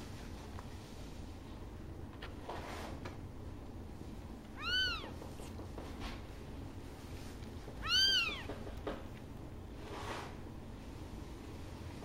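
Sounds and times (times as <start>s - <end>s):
kitten crying: 4.6s - 5.2s, 7.8s - 8.6s.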